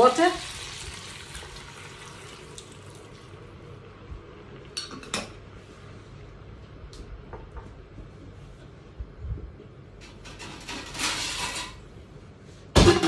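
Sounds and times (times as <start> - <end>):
water pouring into a pot: 0.0 - 3.4.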